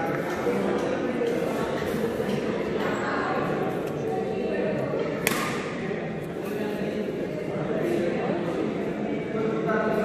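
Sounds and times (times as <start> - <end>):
murmur of spectators' voices: 0.0 - 10.0.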